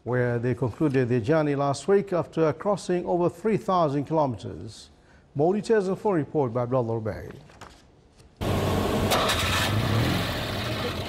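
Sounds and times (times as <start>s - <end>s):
car engine idling: 8.4s - 11.0s.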